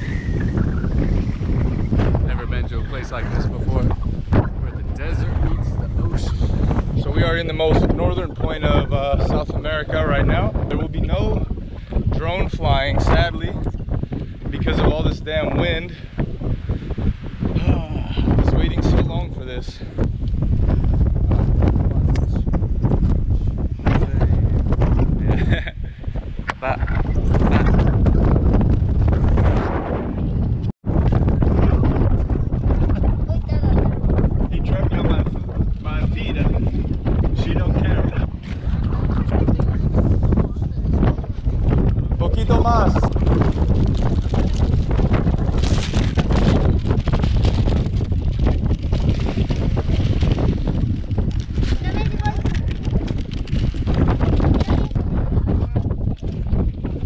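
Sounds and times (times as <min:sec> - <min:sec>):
wind buffeting microphone: 0:00.0 - 0:57.0
people talking: 0:02.2 - 0:11.5, 0:12.1 - 0:13.6, 0:14.5 - 0:16.0, 0:17.6 - 0:19.8, 0:23.8 - 0:24.6, 0:25.2 - 0:25.8, 0:26.5 - 0:28.1, 0:33.2 - 0:36.7, 0:37.3 - 0:41.3, 0:42.2 - 0:43.1, 0:51.8 - 0:52.7, 0:54.5 - 0:55.8.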